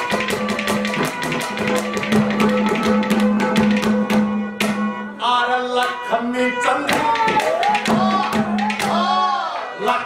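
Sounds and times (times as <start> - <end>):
hand drum quick beat: 0.0 - 4.9, 6.9 - 9.2.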